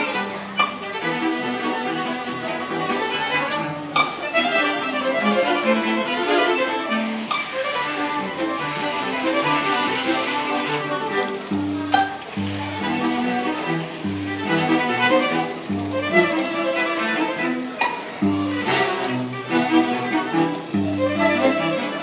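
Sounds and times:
string quintet playing: 0.0 - 22.0.

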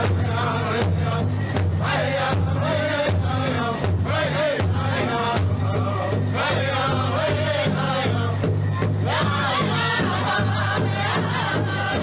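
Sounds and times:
group singing and chanting: 0.0 - 12.0
steady low drum beat: 0.0 - 12.0.

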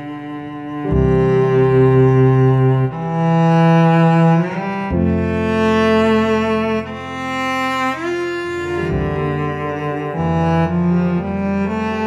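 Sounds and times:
cello playing long bowed notes: 0.0 - 12.0.

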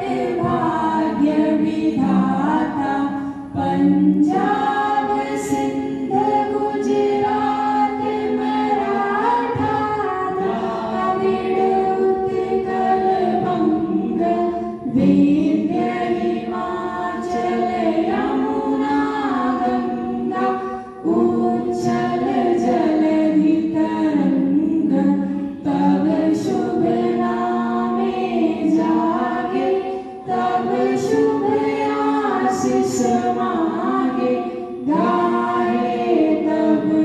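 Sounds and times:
group singing in unison: 0.0 - 37.0.

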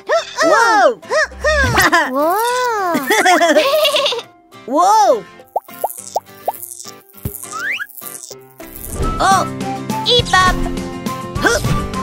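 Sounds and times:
light children's music: 0.0 - 12.0
cartoon plops: 5.5 - 7.9.

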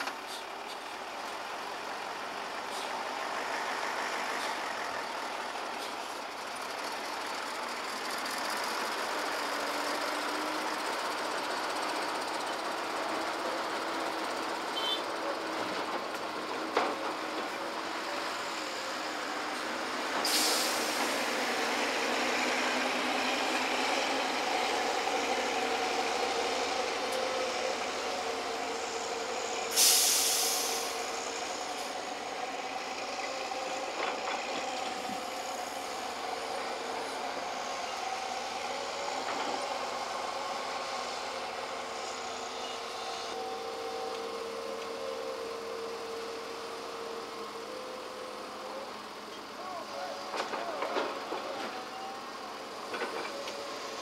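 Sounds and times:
heavy machinery engine drone: 0.0 - 54.0
loud hiss of released air: 20.2 - 21.4, 28.8 - 32.0.

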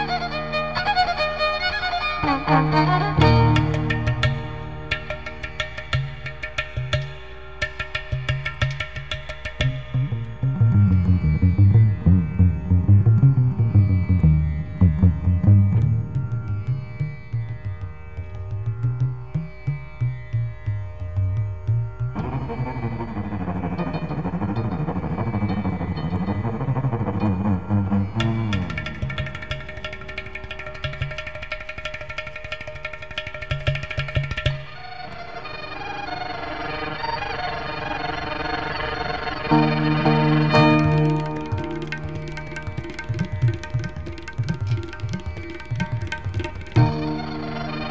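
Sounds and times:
violin: 0.0 - 47.9
quick hand percussion: 3.2 - 10.2, 28.1 - 35.2, 40.4 - 47.9
steady held drone tones: 22.1 - 29.1.

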